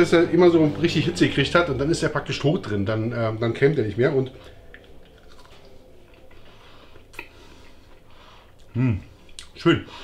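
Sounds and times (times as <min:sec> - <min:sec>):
person chewing: 0:04.3 - 0:09.6.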